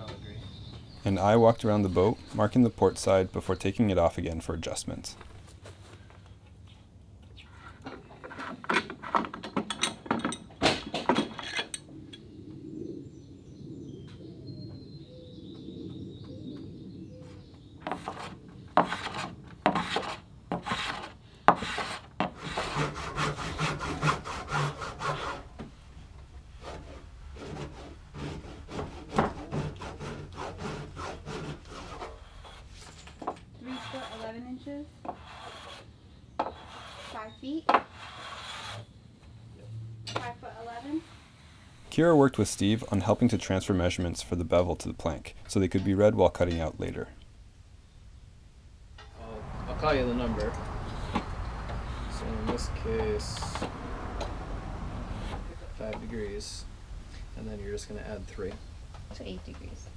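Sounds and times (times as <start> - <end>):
hand tools rasping on wood: 17.9 - 25.4, 26.6 - 32.7, 33.6 - 34.4, 35.1 - 38.9, 50.7 - 53.5.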